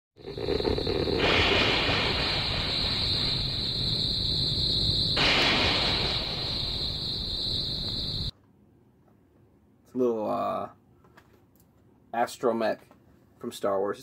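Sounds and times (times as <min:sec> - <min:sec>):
loud static hiss: 0:00.2 - 0:08.3.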